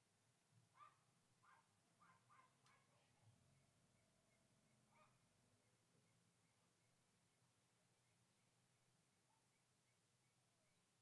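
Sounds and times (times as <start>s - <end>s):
dog barking faintly: 0.7s - 3.3s, 4.9s - 5.2s.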